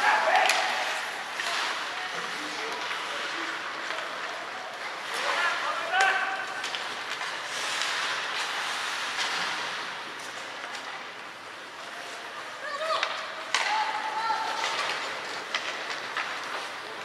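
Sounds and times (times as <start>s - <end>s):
sharp crack of stick or puck: 0.0s - 4.2s, 5.0s - 11.1s, 12.9s - 17.0s
skates scraping on ice: 0.0s - 17.0s.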